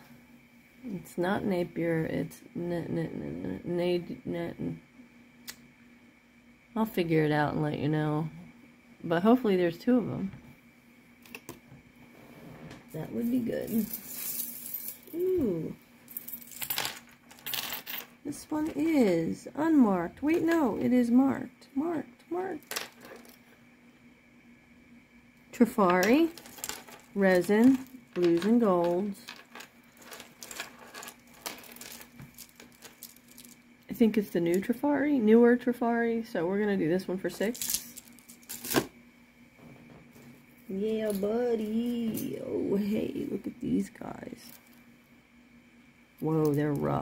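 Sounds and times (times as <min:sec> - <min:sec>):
faint steady hum: 0:00.0 - 0:47.0
jewelry rustling and clicking: 0:13.2 - 0:15.3, 0:22.6 - 0:23.5, 0:25.8 - 0:33.6, 0:37.4 - 0:38.9
beads clinking: 0:13.7 - 0:15.3, 0:26.1 - 0:33.6, 0:37.5 - 0:38.8.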